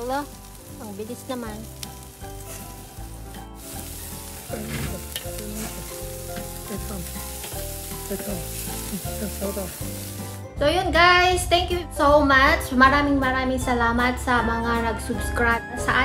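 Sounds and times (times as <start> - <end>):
meat skewers sizzling on grill: 0.0 - 10.5
tongs turning meat: 1.6 - 10.4.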